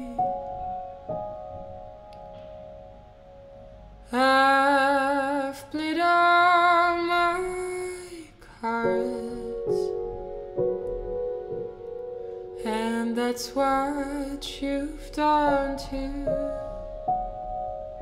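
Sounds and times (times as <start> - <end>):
soft piano: 0.0 - 18.0.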